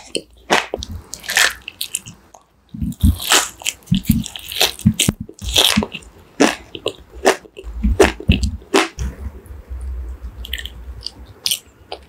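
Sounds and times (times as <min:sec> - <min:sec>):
crunchy food chewing: 0:00.0 - 0:09.0.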